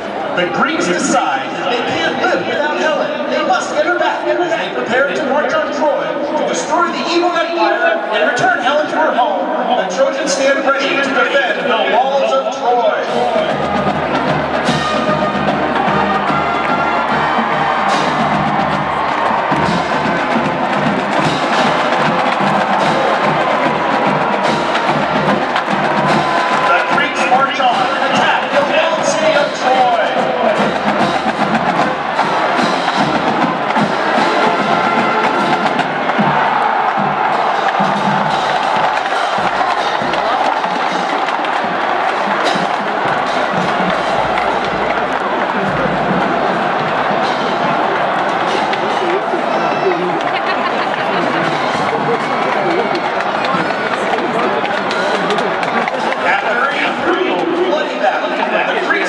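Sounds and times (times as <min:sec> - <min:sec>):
marching band playing: 0:00.0 - 0:59.0
murmur of stadium crowd: 0:00.0 - 0:59.0
percussion strikes: 0:13.0 - 0:57.7.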